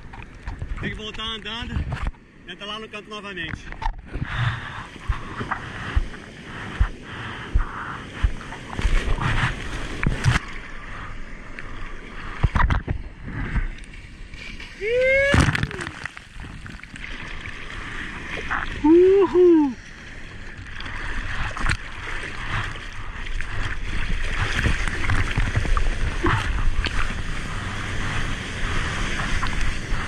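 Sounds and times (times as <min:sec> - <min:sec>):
seawater splashing and sloshing: 0:04.3 - 0:19.2, 0:19.8 - 0:30.0
whooping call: 0:14.8 - 0:16.0, 0:18.8 - 0:19.8.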